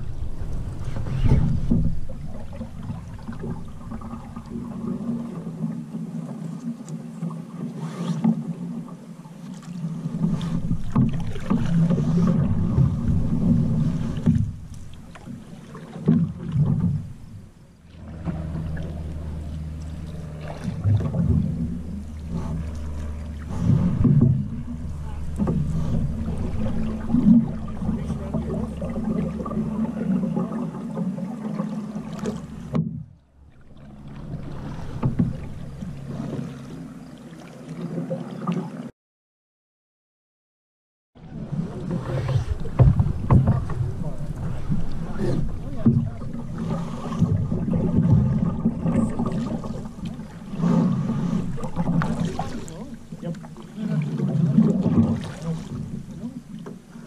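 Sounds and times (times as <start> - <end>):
paddle strokes in water: 0.0 - 38.9, 41.2 - 57.0
water along wooden hull: 0.0 - 39.0, 41.2 - 57.0
knocks on canoe: 42.6 - 44.2, 45.4 - 46.4.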